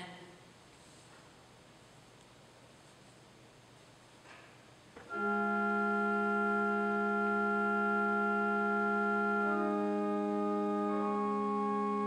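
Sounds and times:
pipe organ chord: 5.0s - 12.0s.

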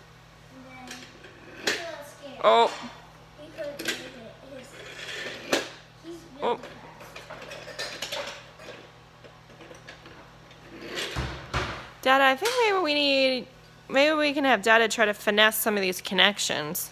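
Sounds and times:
toy train rolling on wooden track: 4.1s - 5.6s.

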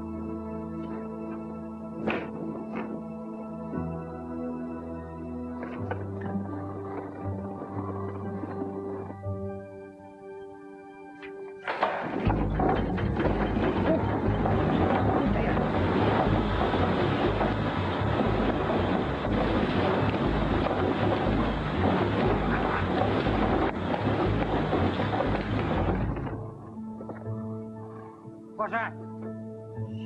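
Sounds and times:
textile machine clattering: 11.6s - 26.5s
pulsing low rumble: 12.3s - 26.6s.

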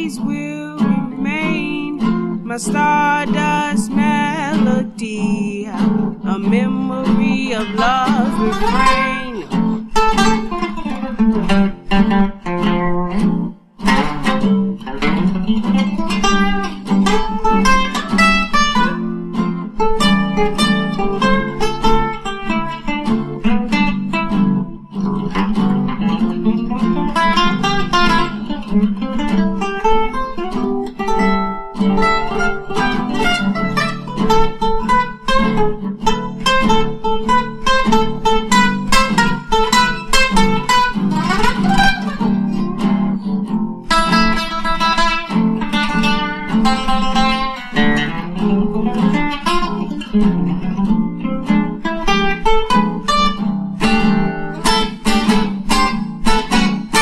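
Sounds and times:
acoustic guitar jazz: 0.0s - 57.0s.

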